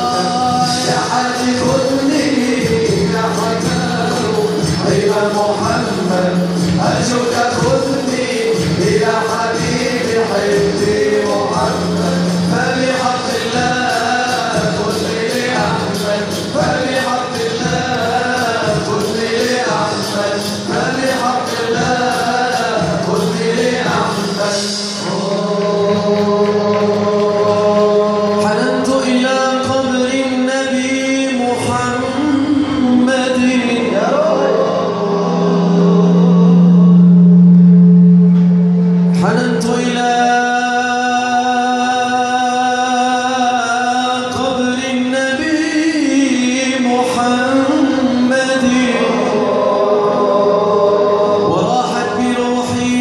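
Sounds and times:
men chanting a religious song: 0.0 - 37.1, 39.1 - 53.0
low drone: 33.8 - 41.1.

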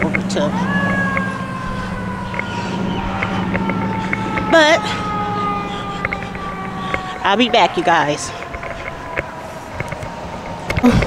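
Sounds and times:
siren wailing: 0.0 - 11.0
steady low hum: 0.0 - 11.0.

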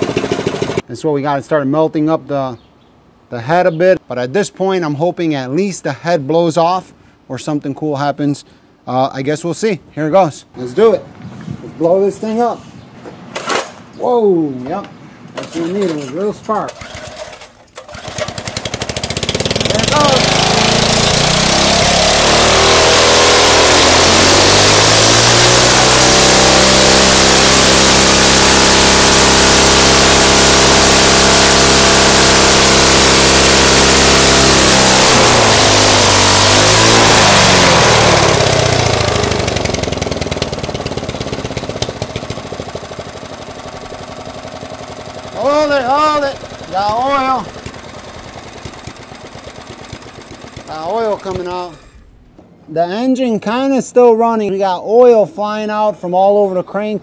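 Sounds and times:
single-cylinder engine revving: 0.0 - 0.8, 16.7 - 51.9.

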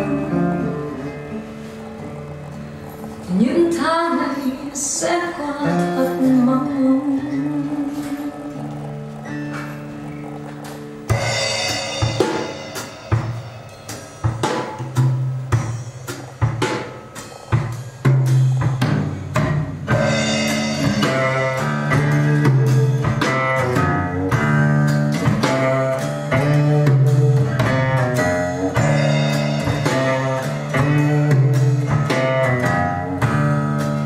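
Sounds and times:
drum kit with bass: 0.0 - 34.0
held low notes: 0.0 - 34.0.

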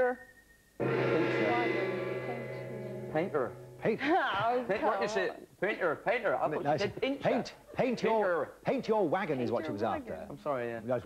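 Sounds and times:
sustained musical chord: 0.8 - 5.2.

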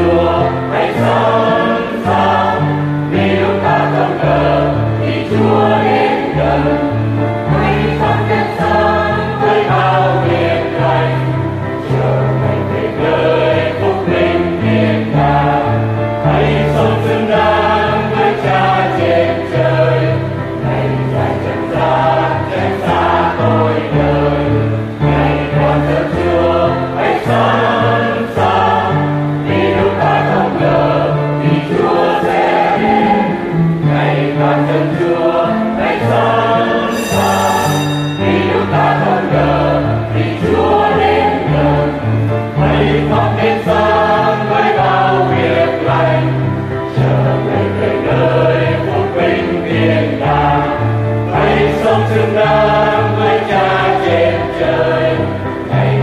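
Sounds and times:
church choir singing a hymn: 0.0 - 56.0
instrumental accompaniment: 0.0 - 56.0.

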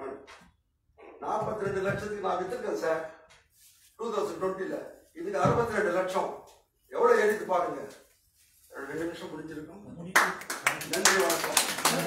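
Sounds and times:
man speaking: 1.2 - 3.2, 4.0 - 8.0, 8.7 - 12.0
audience applauding: 10.2 - 12.0.

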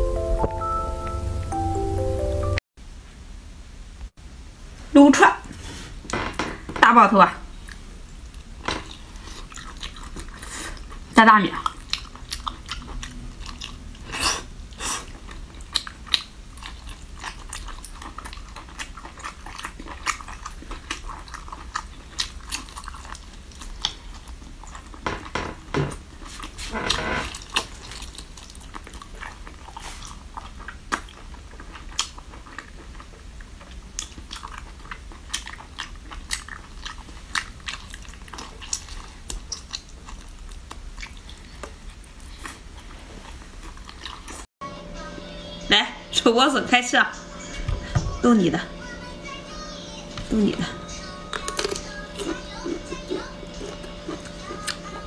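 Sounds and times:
person chewing: 7.5 - 25.3, 25.9 - 44.5, 50.1 - 55.0.

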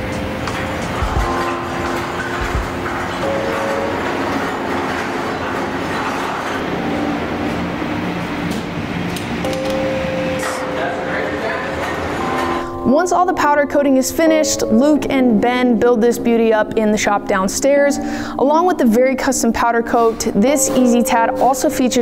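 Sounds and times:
music of sustained chords: 0.0 - 18.8
low knocks: 1.0 - 3.9.

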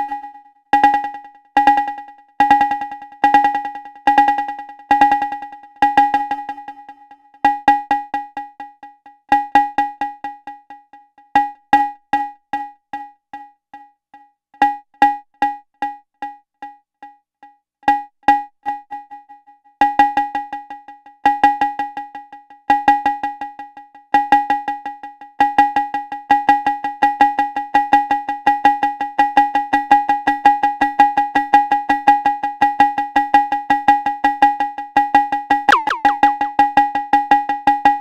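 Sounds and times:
downward pitch sweep: 35.7 - 36.6
synthesized cowbell drum hits with echoes: 35.7 - 36.6.

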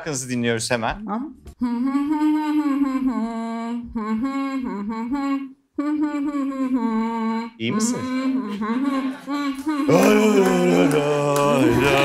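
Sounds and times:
woman humming into a microphone: 1.1 - 10.8.

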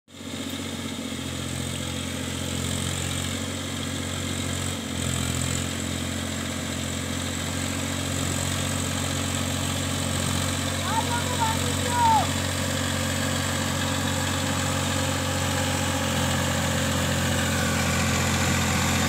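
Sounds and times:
tractor diesel engine under load: 0.1 - 19.0.

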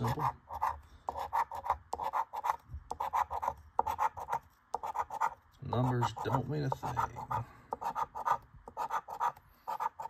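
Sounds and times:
coin scratching a lottery ticket: 0.0 - 10.0.

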